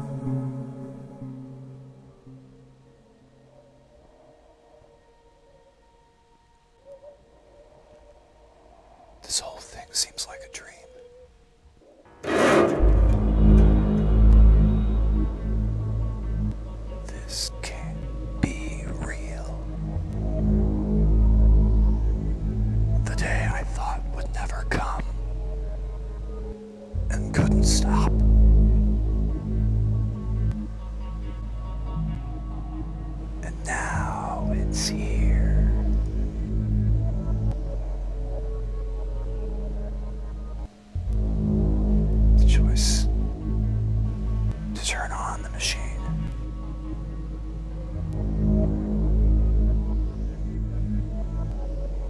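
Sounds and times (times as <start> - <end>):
ambient drone: 0.0 - 52.0
person whispering: 9.2 - 11.0, 17.0 - 19.8, 23.0 - 25.3, 27.0 - 28.3, 33.4 - 36.2, 42.4 - 43.1, 44.7 - 46.3
gong-like tone: 12.4 - 16.4.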